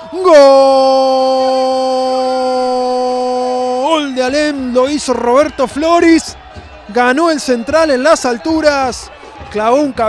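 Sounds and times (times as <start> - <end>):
commentator shouting goal: 0.0 - 10.0.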